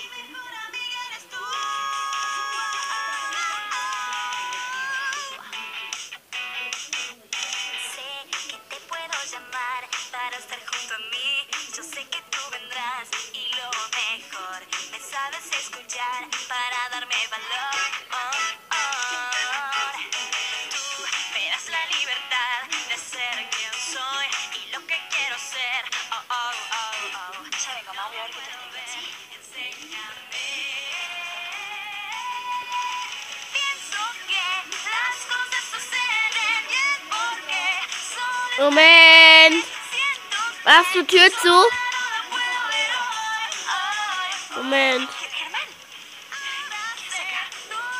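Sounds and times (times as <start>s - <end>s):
girls singing pop song: 0.0s - 6.8s, 7.5s - 47.9s.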